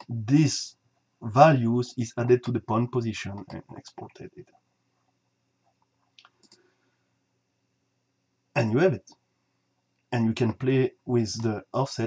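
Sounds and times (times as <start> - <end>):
faint computer mouse clicks: 6.2 - 6.7.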